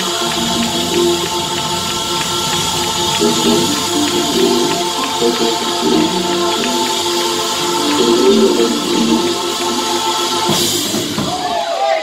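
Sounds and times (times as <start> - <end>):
organ and band: 0.0 - 11.4
cymbal crash: 0.0 - 11.5
gospel choir singing: 0.0 - 12.0.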